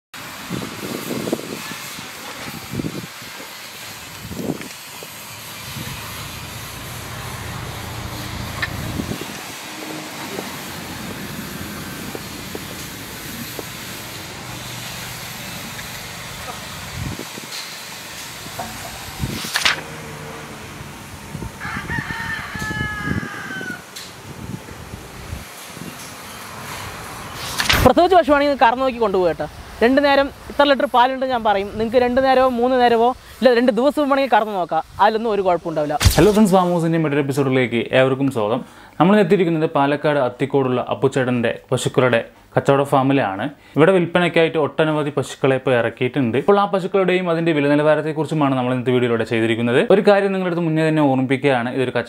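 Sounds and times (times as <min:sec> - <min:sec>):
rooster crowing: 0:21.4 - 0:24.1.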